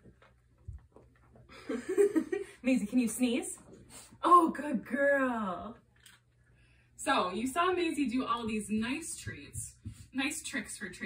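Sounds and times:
woman laughing: 1.5 - 2.9.

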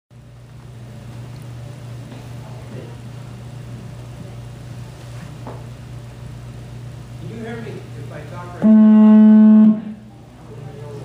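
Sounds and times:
low room hum: 0.1 - 11.0
faint murmured voices: 7.6 - 11.0.

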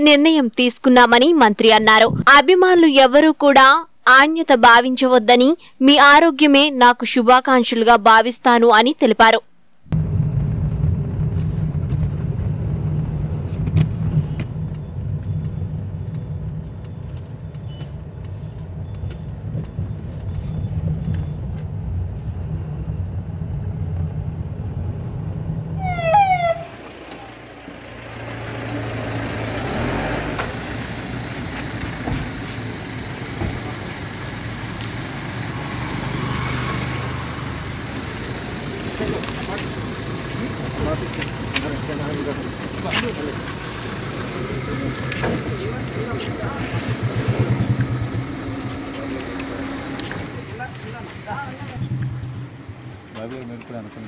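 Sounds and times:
car engine and road rumble: 9.6 - 54.0
street traffic noise: 9.7 - 54.0.

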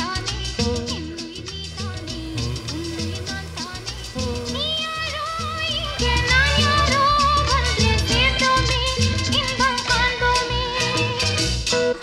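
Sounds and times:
drum beat and bass line: 0.0 - 12.0
high gliding wavering melody: 1.1 - 11.7.

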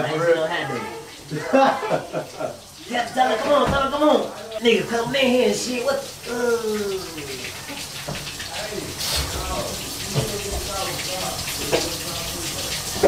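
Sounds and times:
shower water spraying on tiles: 0.7 - 13.0.

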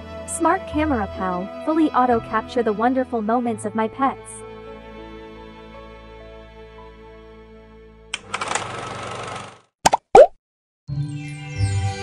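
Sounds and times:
soft background music: 0.1 - 7.2.

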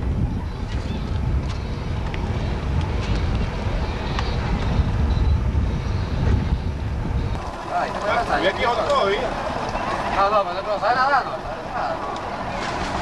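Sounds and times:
wind on microphone: 0.0 - 10.3
motorboat motor rumble: 0.0 - 13.0.

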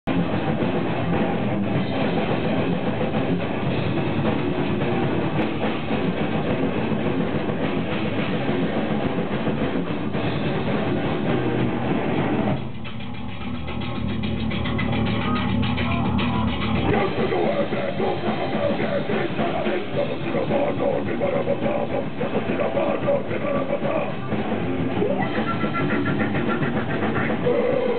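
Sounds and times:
grindcore band playing loud: 0.1 - 27.9.

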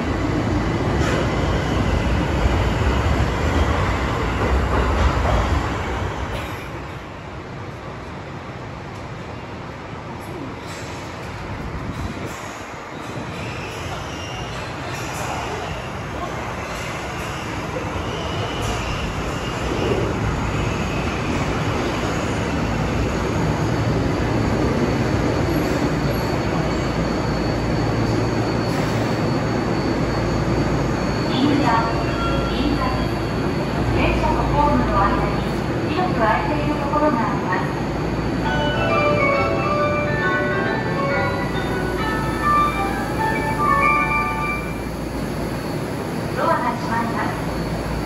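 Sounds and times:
subway train rumbling: 0.0 - 48.0
high brake whine: 25.5 - 31.4.

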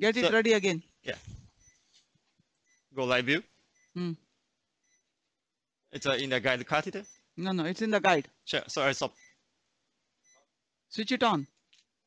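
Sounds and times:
person speaking: 0.0 - 1.6, 2.9 - 4.3.

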